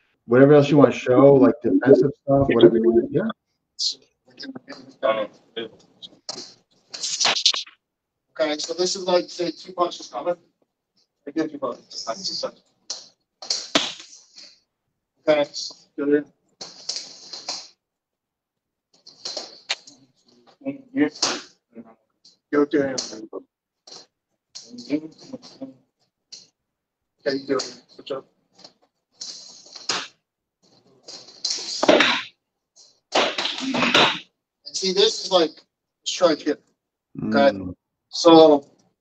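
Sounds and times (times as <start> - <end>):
sharp slap: 6.3 - 7.8, 12.9 - 14.2, 21.2 - 21.6, 29.7 - 30.2, 31.4 - 32.4, 33.1 - 34.3.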